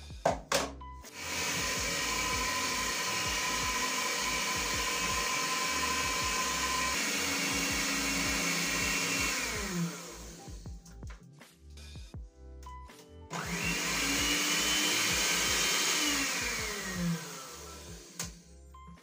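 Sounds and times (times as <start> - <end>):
electric hand mixer whipping: 1.1 - 10.7, 13.3 - 18.4.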